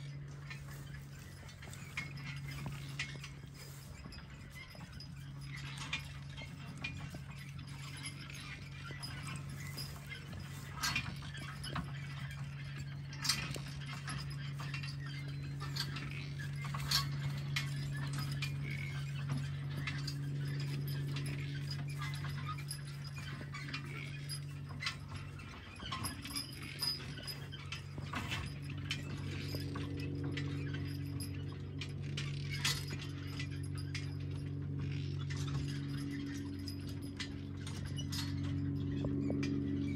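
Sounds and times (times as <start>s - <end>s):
harness chains clinking: 0.0s - 39.9s
steady low hum: 0.0s - 39.9s
hoof falls: 0.1s - 31.4s.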